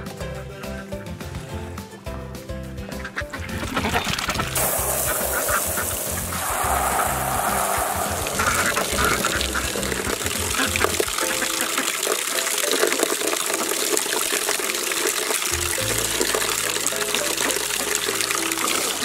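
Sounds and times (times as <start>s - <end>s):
background music: 0.0s - 19.0s
ducks quacking: 2.8s - 12.6s
hose water splashing into tub: 3.6s - 19.0s.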